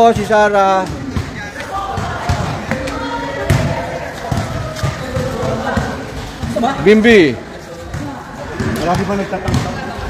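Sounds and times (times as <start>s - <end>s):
basketball bouncing on court: 0.0s - 6.8s, 7.8s - 10.0s
people chatting: 0.0s - 10.0s.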